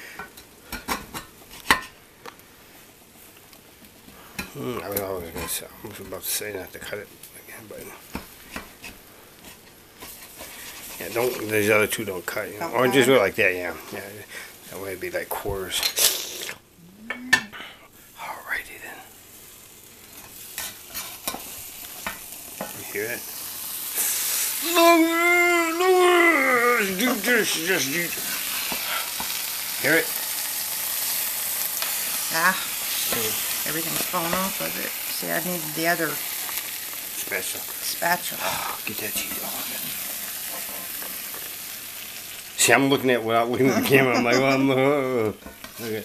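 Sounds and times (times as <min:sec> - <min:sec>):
pizza sizzling in hot pan: 0:00.0 - 0:46.0.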